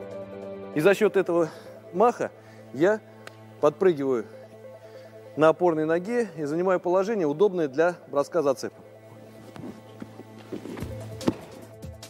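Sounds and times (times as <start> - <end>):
background music: 0.0 - 12.0
boot footfalls on mat: 9.4 - 11.7.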